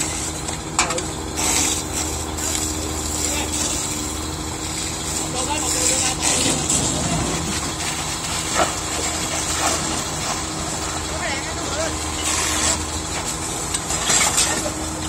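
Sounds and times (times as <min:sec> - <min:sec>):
engine hum: 0:00.0 - 0:15.0
people talking indistinctly: 0:00.8 - 0:04.2, 0:04.8 - 0:07.6, 0:10.8 - 0:12.8.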